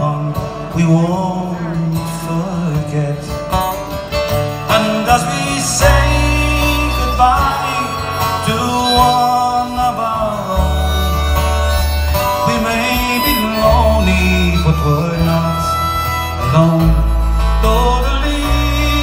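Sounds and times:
strummed acoustic guitars: 0.0 - 19.0
accordion: 1.5 - 19.0
harmonica melody: 3.3 - 19.0
low sustained bass notes: 10.2 - 19.0.

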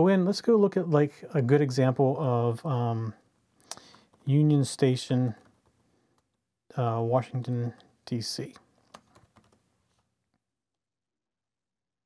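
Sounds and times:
computer keyboard keystrokes: 8.9 - 9.6.

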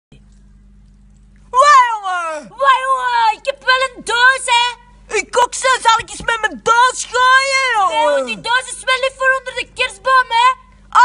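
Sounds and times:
faint low hum: 0.1 - 11.0.

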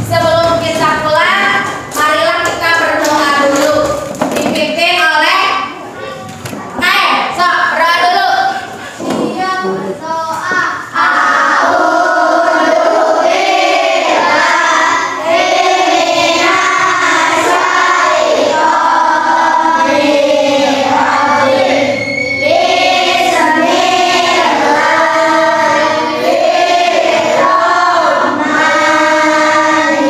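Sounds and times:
children singing in unison: 8.4 - 30.0.

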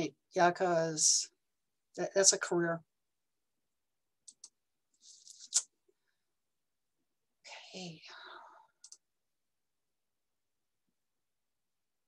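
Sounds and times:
faint clicks: 8.8 - 9.1.

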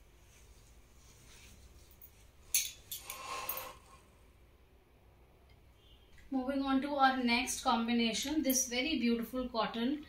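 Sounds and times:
garments on hangers rustling: 0.0 - 4.0.

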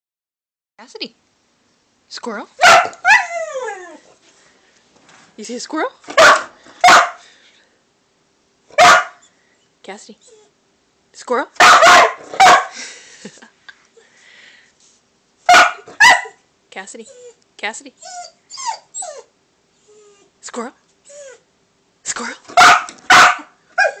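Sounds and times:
dog barking: 2.6 - 3.3, 6.1 - 7.2, 8.7 - 9.2, 11.6 - 12.8, 15.4 - 16.4, 22.5 - 24.0.

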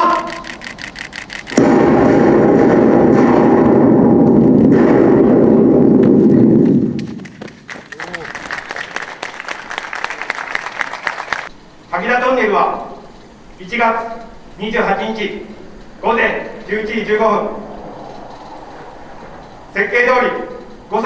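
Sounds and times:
blast rumble in tunnel: 1.4 - 7.6, 14.3 - 21.0
applause: 6.9 - 11.5.

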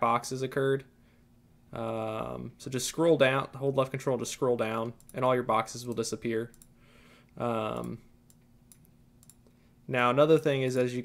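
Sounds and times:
computer mouse clicks: 5.8 - 6.7, 7.7 - 9.6.

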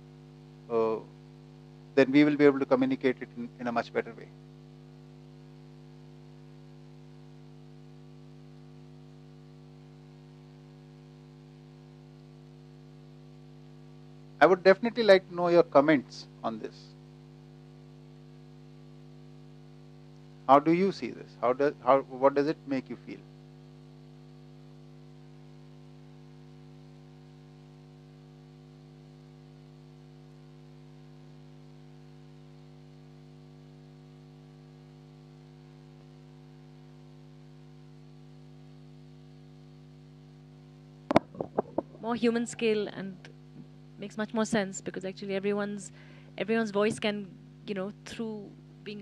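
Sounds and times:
faint mains hum with hiss: 0.0 - 49.0.

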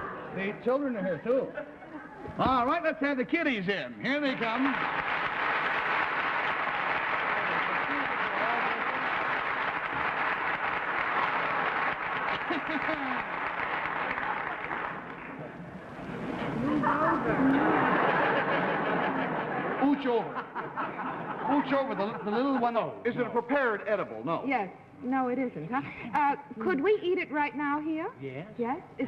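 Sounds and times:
studio audience applauding: 4.2 - 20.2
audience laughter: 12.2 - 14.6, 16.0 - 22.9
voices: 16.4 - 20.5.

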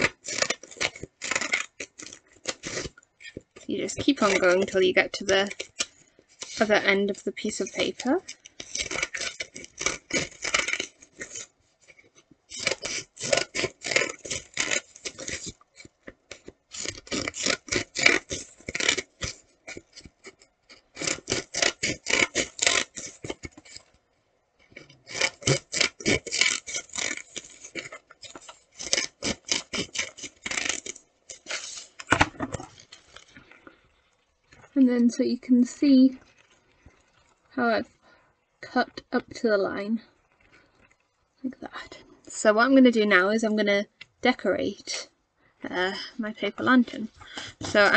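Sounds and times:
scissors snipping paper: 0.0 - 3.4, 4.0 - 11.5, 12.5 - 23.9, 24.7 - 32.2.

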